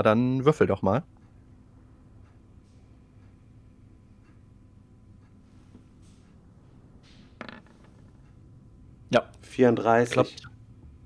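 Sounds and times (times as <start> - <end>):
faint creak: 7.0 - 8.3.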